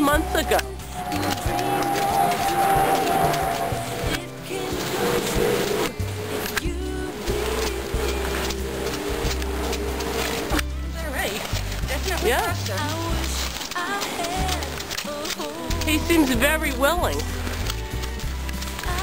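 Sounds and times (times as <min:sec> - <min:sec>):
background music with bass line: 0:00.0 - 0:13.6, 0:15.6 - 0:19.0.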